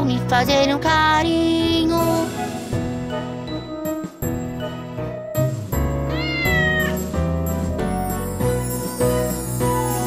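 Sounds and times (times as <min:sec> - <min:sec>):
children's song backing music: 0:00.0 - 0:06.8
cat meowing: 0:06.1 - 0:07.1.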